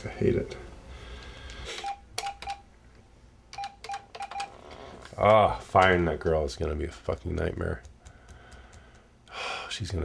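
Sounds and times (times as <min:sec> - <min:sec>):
telephone keypad beeps: 0:03.5 - 0:04.6.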